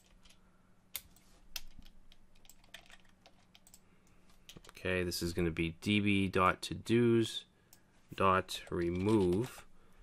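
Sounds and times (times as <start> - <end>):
faint steady hum: 0.0 - 10.0
computer keyboard keystrokes: 1.0 - 3.8.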